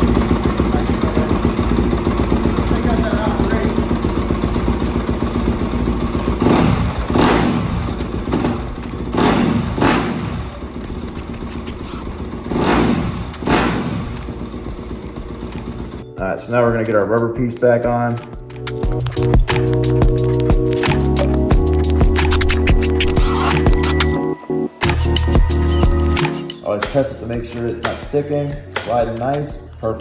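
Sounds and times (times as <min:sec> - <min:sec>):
motorcycle engine idling and revving: 0:00.0 - 0:24.1.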